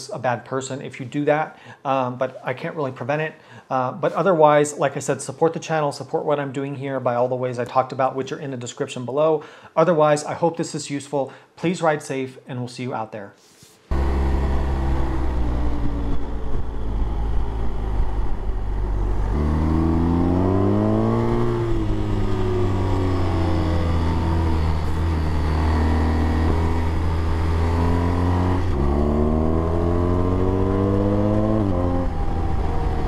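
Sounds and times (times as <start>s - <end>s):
motorcycle engine revving: 13.9s - 33.0s
rushing wind: 13.9s - 33.0s.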